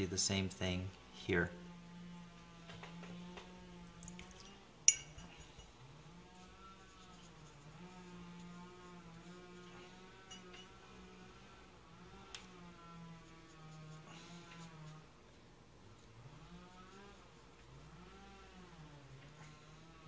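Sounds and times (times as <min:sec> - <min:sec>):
faint steady hum: 0:00.0 - 0:20.0
sharp light clink: 0:04.9 - 0:05.7.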